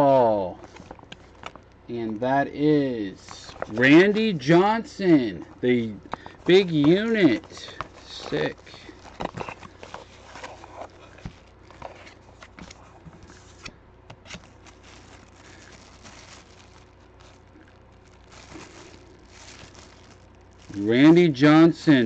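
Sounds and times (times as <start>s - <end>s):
plastic packaging crinkling: 0.2s - 22.0s.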